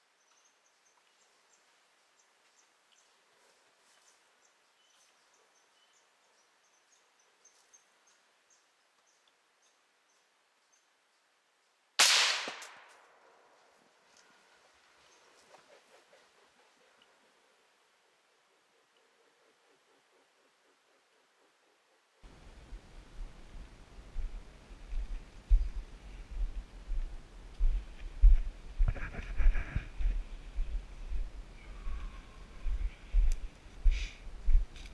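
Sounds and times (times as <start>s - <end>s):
suppressed rifle shot: 12.0s - 13.2s.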